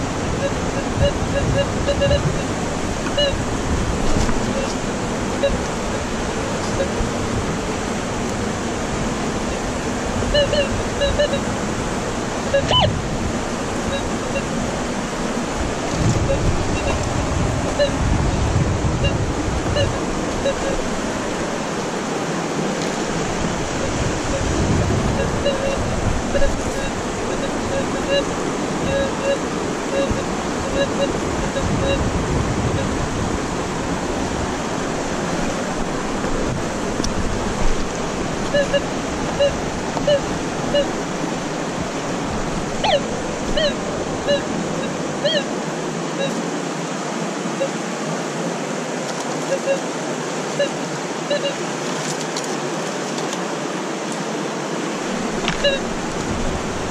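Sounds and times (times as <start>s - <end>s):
river rushing: 0.0s - 56.9s
short high pips: 12.5s - 13.0s, 42.8s - 44.5s.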